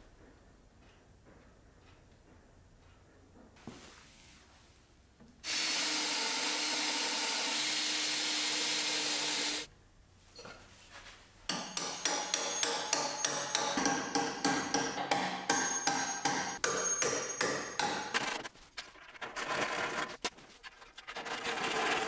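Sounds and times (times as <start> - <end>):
cordless drill boring into wood: 5.4 - 9.7
hammer strikes with metallic ring: 11.5 - 18.2.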